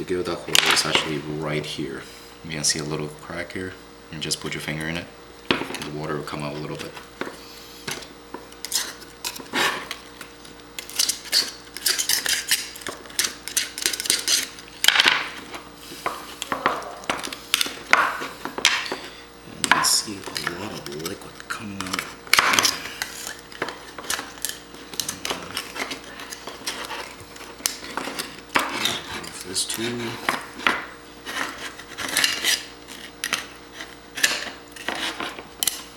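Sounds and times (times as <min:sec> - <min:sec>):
knife scraping and clicking on shell: 0:07.9 - 0:14.8, 0:21.8 - 0:35.9.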